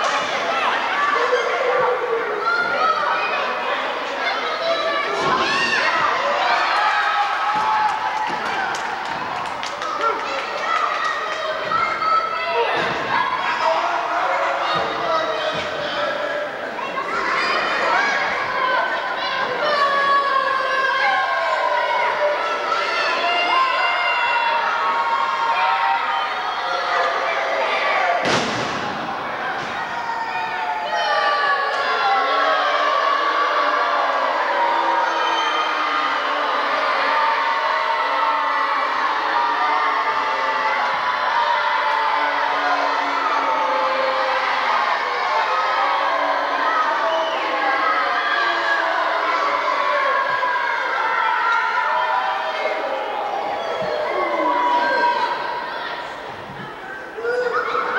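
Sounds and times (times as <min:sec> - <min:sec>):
children's voices: 0:00.0 - 0:57.9
crowd yelling: 0:00.0 - 0:57.9.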